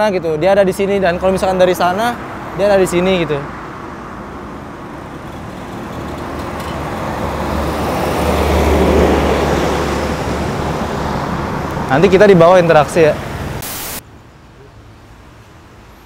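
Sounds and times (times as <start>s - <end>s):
vehicle passing: 1.0s - 13.6s.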